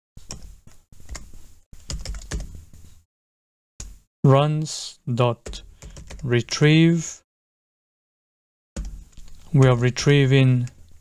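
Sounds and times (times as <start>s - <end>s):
computer keyboard typing: 1.1s - 2.6s, 5.5s - 6.3s.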